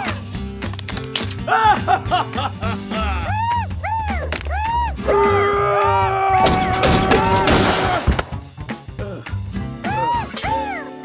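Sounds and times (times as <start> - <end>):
loud crash and clatter: 6.4 - 8.5.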